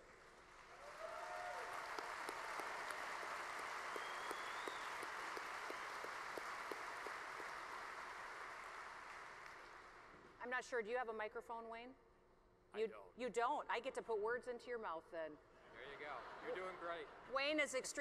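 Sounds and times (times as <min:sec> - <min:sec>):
large audience applauding: 0:00.0 - 0:10.2
crowd whistle: 0:03.6 - 0:05.8.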